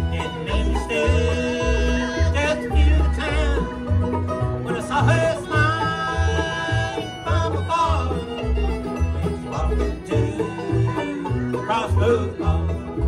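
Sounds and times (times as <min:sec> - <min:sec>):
acoustic guitar: 0:00.0 - 0:13.0
banjo picking: 0:00.0 - 0:13.0
dobro: 0:00.0 - 0:13.0
fiddle: 0:00.0 - 0:13.0
mandolin: 0:00.0 - 0:13.0
upright bass pulsing: 0:00.0 - 0:13.0.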